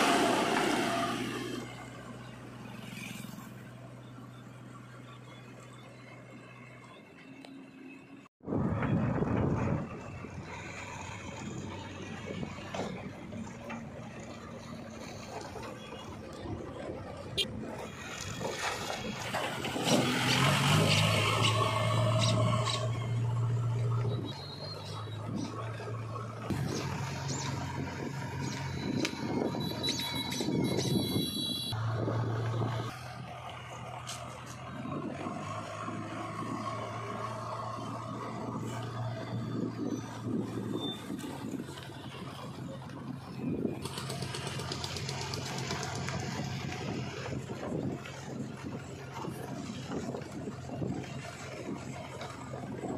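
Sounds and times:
diesel engine humming: 0:00.0 - 0:52.9.

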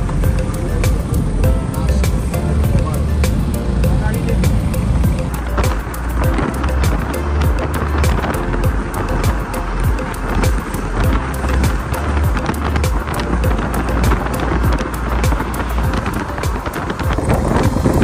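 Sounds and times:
music with heavy bass beat: 0:00.0 - 0:18.0.

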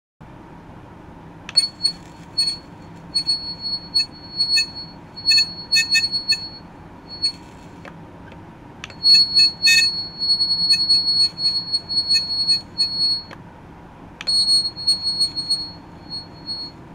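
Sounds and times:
ultrasonic probe chirps and buzzes: 0:01.5 - 0:07.9, 0:08.8 - 0:13.4, 0:14.2 - 0:16.9.

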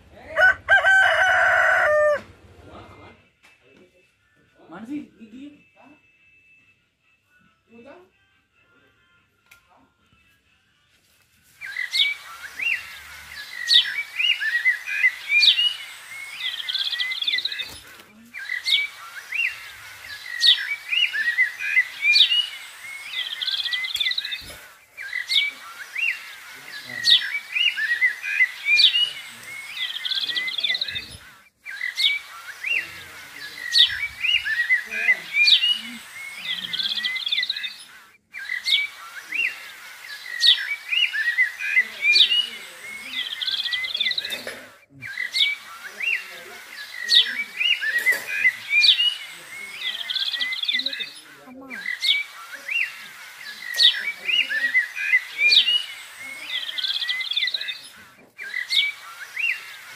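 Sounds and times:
birdsong chirps and whistles: 0:11.5 - 0:59.9.

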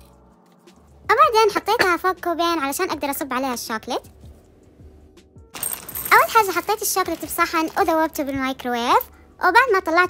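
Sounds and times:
quiet background music: 0:00.0 - 0:10.0
chocolate chips poured into glass bowl: 0:05.6 - 0:08.0.

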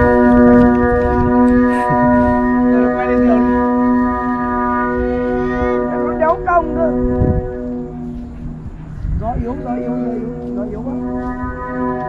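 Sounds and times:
kite flutes sounding a chord: 0:00.0 - 0:12.0.

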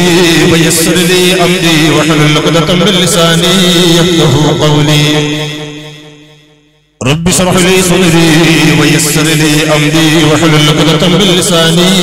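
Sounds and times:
man chanting into a microphone: 0:00.0 - 0:06.4, 0:07.0 - 0:12.0.

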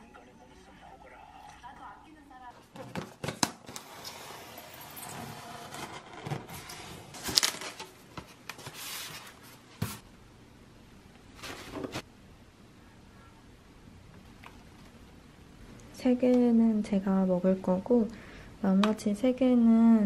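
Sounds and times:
styrofoam box scraping: 0:03.8 - 0:07.2
packaging rustling: 0:05.6 - 0:09.6.

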